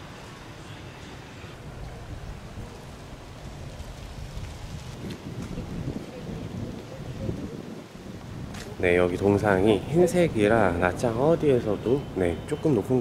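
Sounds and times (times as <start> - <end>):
wind buffeting microphone: 1.6 - 13.0.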